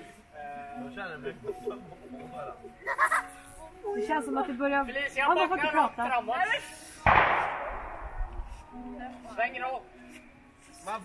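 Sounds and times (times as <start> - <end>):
sharp bang: 7.1 - 8.5.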